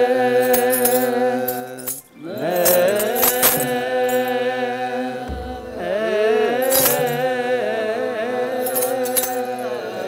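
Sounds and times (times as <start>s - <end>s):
men chanting in unison: 0.0s - 10.0s
metallic jingles: 0.4s - 4.4s, 6.6s - 7.3s, 8.6s - 9.6s.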